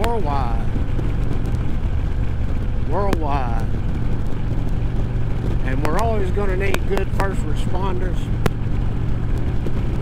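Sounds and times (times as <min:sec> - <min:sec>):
motorcycle engine cruising: 0:00.0 - 0:10.0
wind rumble: 0:00.0 - 0:10.0.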